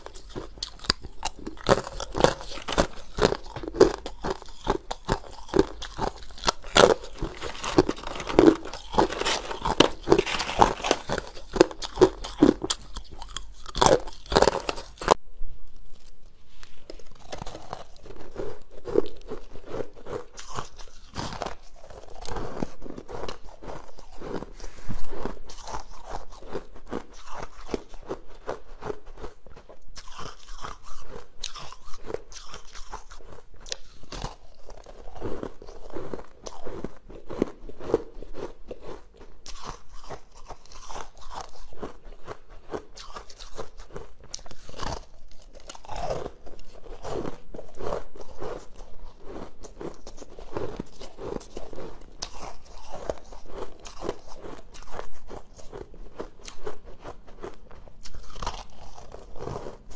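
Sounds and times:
person crunching ice: 0.0s - 15.2s, 16.8s - 59.9s.

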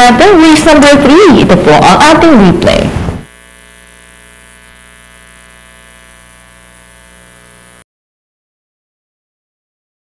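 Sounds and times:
announcer speaking: 0.0s - 2.9s
electrical mains hum: 0.0s - 7.8s.

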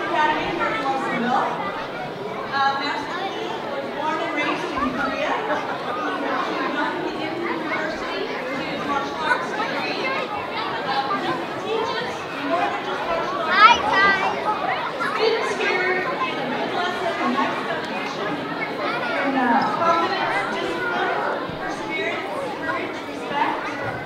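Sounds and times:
audience chatter: 0.0s - 24.0s.

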